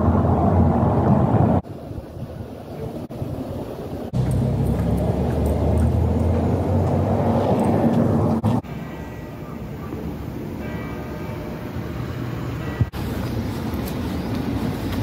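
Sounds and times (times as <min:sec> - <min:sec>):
street background noise: 0:00.0 - 0:15.0.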